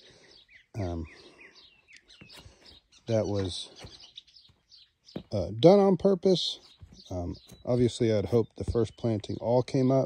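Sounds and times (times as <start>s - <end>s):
small birds chirping faintly: 0.0s - 10.0s.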